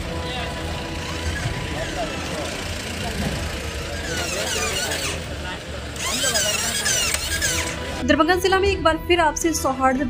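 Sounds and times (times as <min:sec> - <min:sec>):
car engine running: 0:00.0 - 0:08.0
men talking: 0:00.1 - 0:07.9.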